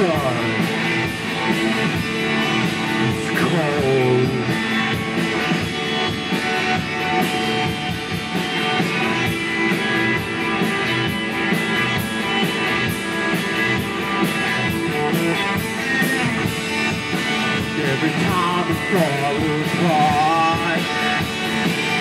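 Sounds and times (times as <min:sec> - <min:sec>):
drums keeping a steady beat: 0:00.0 - 0:22.0
electric guitar: 0:00.0 - 0:22.0
person singing: 0:03.0 - 0:04.8, 0:17.6 - 0:21.2.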